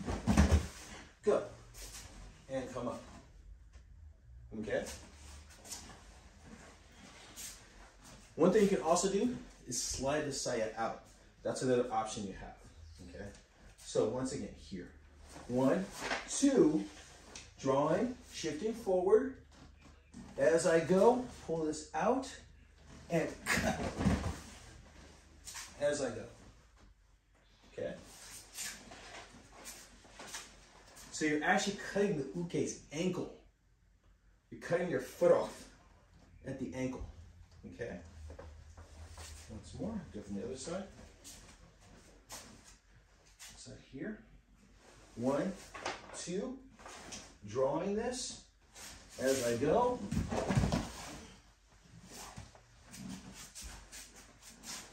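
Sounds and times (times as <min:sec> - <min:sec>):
clothing rustling: 0:48.7 - 0:54.9
shuffling on mats: 0:48.7 - 0:54.9
body thudding on mats: 0:50.1 - 0:51.1.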